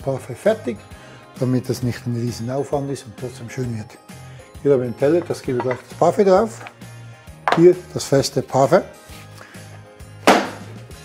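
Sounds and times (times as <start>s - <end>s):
tin knocking on wooden worktop: 5.2s - 5.9s, 7.5s - 7.7s.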